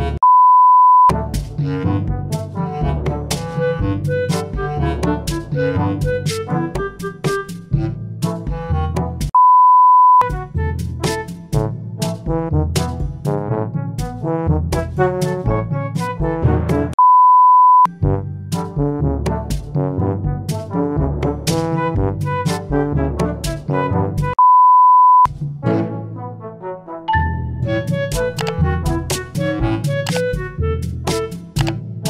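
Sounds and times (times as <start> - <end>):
electronic censor bleep: 0.2 - 1.1, 9.4 - 10.3, 17.0 - 17.9, 24.4 - 25.3
loud high test tone beep: 0.2 - 1.1, 9.4 - 10.2, 17.0 - 17.9, 24.4 - 25.3
jaunty music with brass: 1.1 - 9.3, 10.3 - 17.0, 18.0 - 24.4, 25.4 - 32.0.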